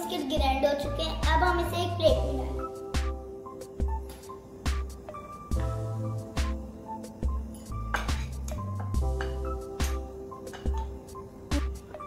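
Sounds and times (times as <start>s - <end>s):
light tune over steady beat: 0.0s - 12.0s.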